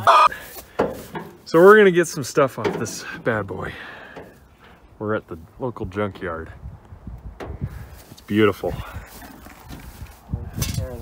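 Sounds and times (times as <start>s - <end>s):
short vocal sound: 0.0s - 0.3s.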